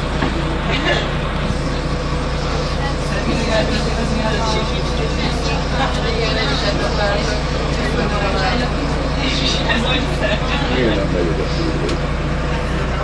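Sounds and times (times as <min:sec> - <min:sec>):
bus engine droning: 0:00.0 - 0:13.0
passengers talking: 0:00.0 - 0:13.0.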